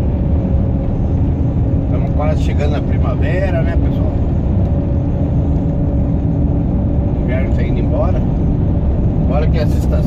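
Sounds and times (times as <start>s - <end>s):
truck engine and road rumble: 0.0s - 10.0s.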